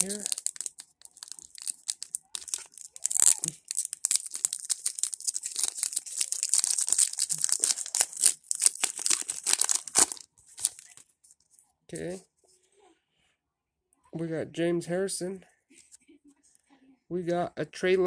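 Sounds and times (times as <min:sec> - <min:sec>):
foil wrapper tearing and crinkling: 0:00.0 - 0:11.0.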